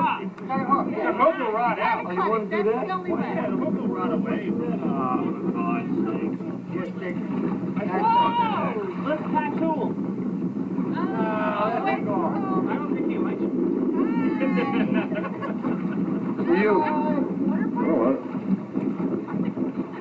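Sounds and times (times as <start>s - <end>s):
steady low hum: 0.0s - 20.0s.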